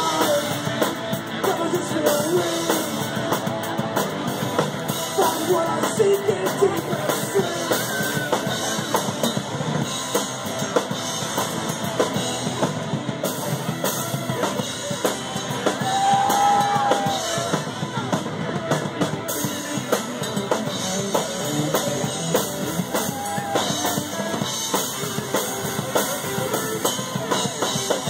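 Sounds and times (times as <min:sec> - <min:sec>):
live rock band playing: 0:00.0 - 0:28.0.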